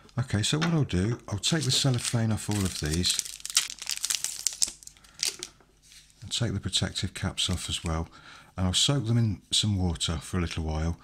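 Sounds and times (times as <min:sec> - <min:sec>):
cellophane wrapper crinkling: 0:01.4 - 0:05.6.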